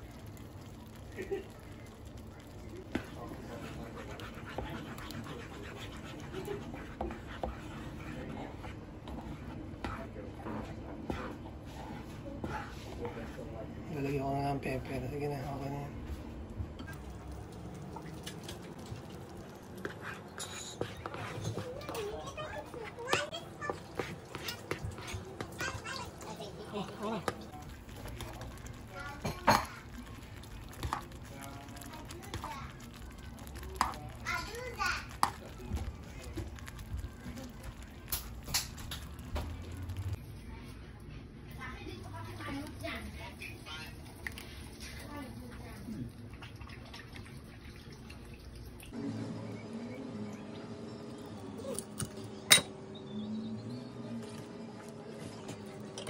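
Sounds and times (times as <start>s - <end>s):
metal spoon stirring gravy: 0.0s - 16.2s, 16.8s - 40.2s
knife tapping and scraping: 19.8s - 22.0s
knife and fork clinking: 20.3s - 21.6s, 51.7s - 52.8s.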